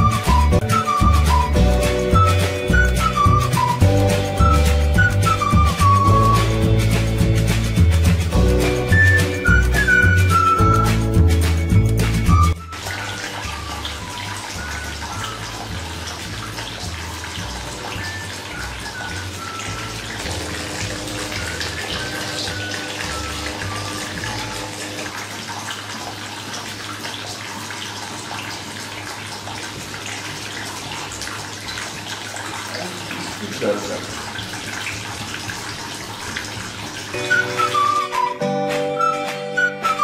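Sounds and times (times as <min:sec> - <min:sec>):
soft background music: 0:00.0 - 0:27.4, 0:33.5 - 0:40.0
water fountain splashing: 0:00.0 - 0:40.0.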